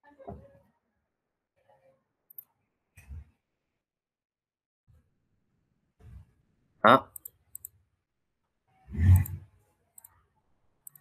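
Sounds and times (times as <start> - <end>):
computer mouse clicking: 2.3 - 2.5, 7.1 - 7.8, 9.0 - 9.4, 10.0 - 10.2.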